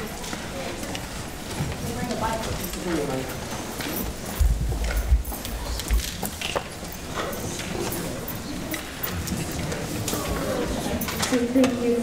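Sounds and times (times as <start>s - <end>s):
microphone handling thumps: 4.4s - 5.4s.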